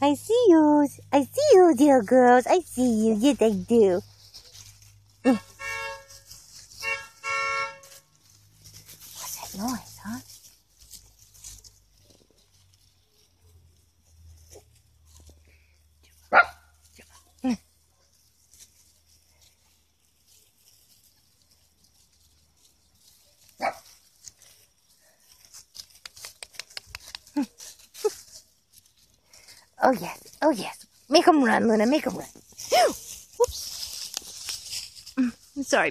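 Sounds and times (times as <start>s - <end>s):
paws rustling in dry leaves: 0.5s - 35.9s
small dogs barking: 16.2s - 18.2s, 23.2s - 24.0s.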